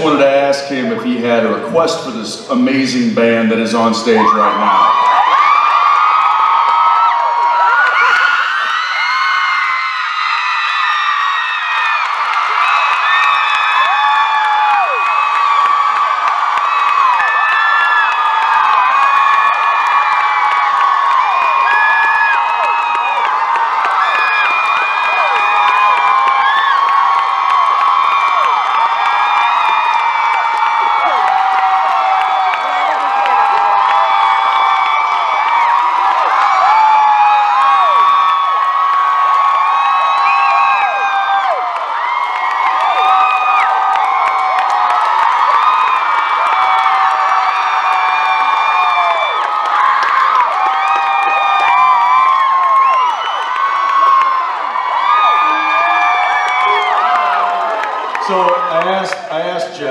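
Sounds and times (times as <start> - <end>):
crowd screaming and cheering: 0.0 - 2.6, 3.2 - 59.9.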